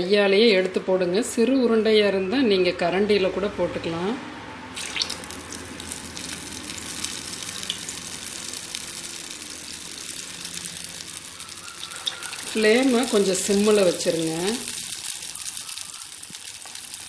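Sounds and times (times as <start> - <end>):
food deep-frying in oil: 4.8 - 17.0.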